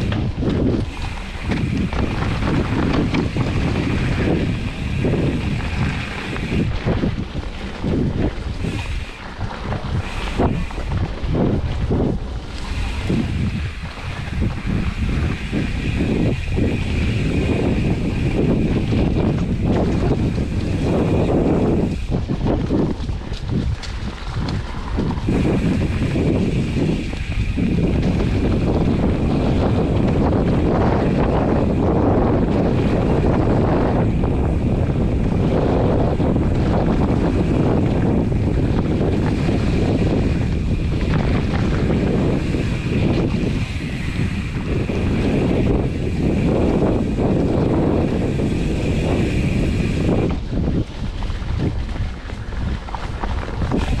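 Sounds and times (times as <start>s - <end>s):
bike knocks and rattles: 0.0s - 54.0s
tyres rolling on dirt trail: 0.0s - 54.0s
wind buffeting microphone: 0.0s - 54.0s.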